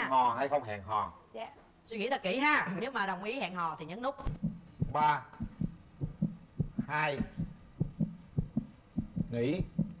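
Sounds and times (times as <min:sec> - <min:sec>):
heartbeat double thump: 0:04.2 - 0:10.0.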